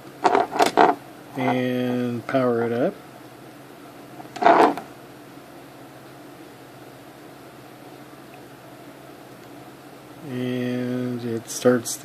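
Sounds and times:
faint room tone hiss: 0:00.0 - 0:12.0.

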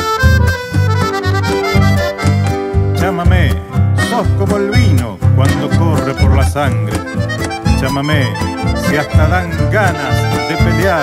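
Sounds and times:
bass beat: 0:00.0 - 0:11.0
plucked guitars: 0:00.0 - 0:11.0.

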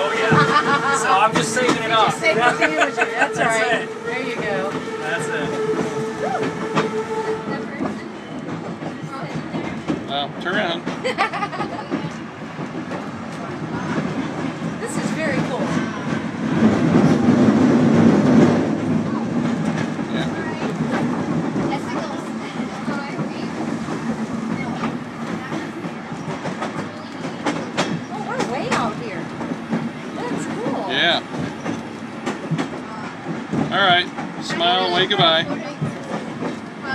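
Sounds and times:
rail clicks: 0:00.0 - 0:36.9
train wheels rumbling on track: 0:00.0 - 0:36.9.

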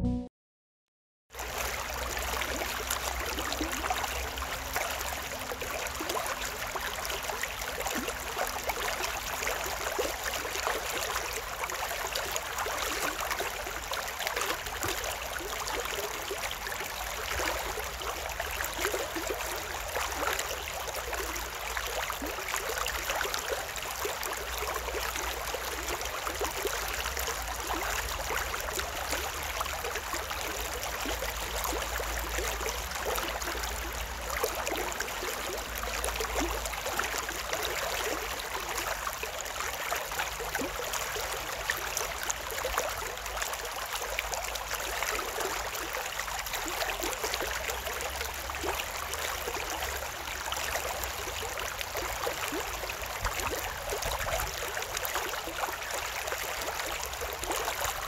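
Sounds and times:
stream babbling over stones: 0:01.4 - 0:58.0.

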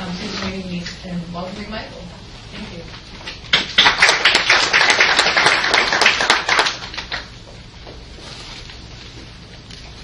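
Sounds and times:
audience applauding: 0:03.5 - 0:07.4.

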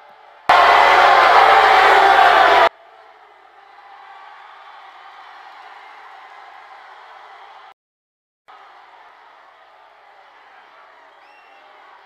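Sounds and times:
crowd cheering and shouting: 0:00.0 - 0:07.7, 0:08.5 - 0:12.0
loud burst of noise: 0:00.5 - 0:02.7.

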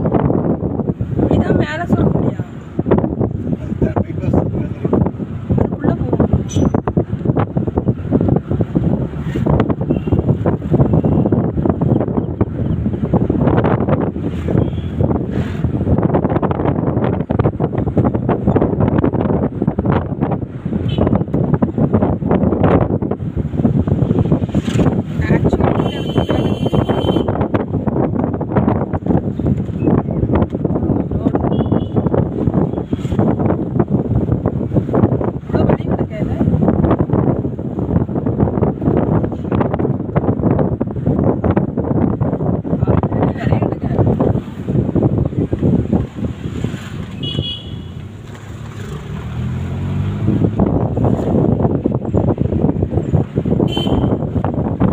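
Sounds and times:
vehicle travel noise: 0:00.0 - 0:54.9
wind buffeting microphone: 0:00.0 - 0:54.9.

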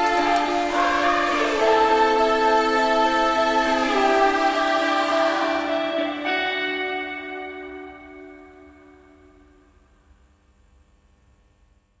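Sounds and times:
held music chord: 0:00.0 - 0:09.8.

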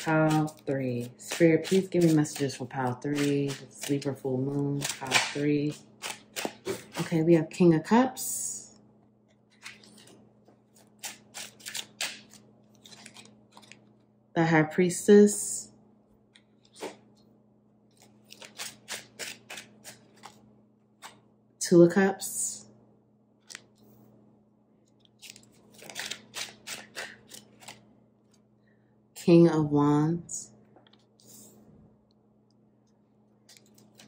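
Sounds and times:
cards scraping and swishing: 0:09.5 - 0:14.0, 0:16.4 - 0:17.3, 0:17.9 - 0:20.4, 0:25.0 - 0:27.8.

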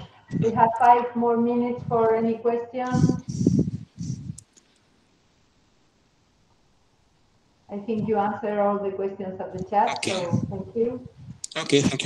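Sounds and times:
person speaking: 0:00.0 - 0:04.6, 0:07.7 - 0:12.0.

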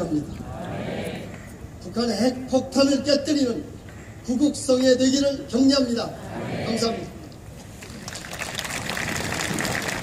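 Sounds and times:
crowd applauding: 0:07.8 - 0:10.0.

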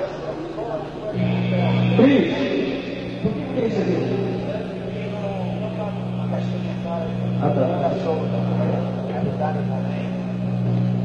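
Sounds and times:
faint indistinct voices: 0:00.0 - 0:11.0
low electrical hum: 0:00.0 - 0:11.0.

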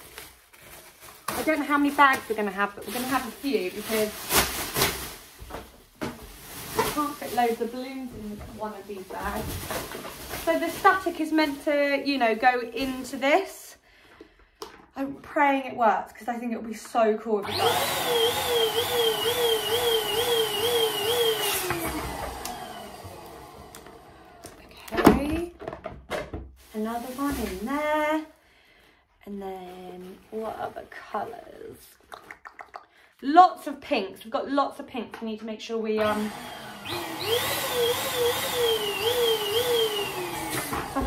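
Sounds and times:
plastic bag rustling: 0:00.0 - 0:13.6, 0:20.1 - 0:25.3, 0:26.5 - 0:28.3, 0:29.4 - 0:31.6
electric balloon pump whining: 0:17.4 - 0:24.7, 0:36.0 - 0:41.0.

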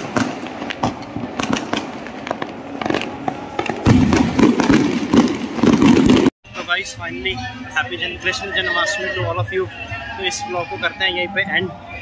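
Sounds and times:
fireworks crackling and popping: 0:00.0 - 0:06.8.

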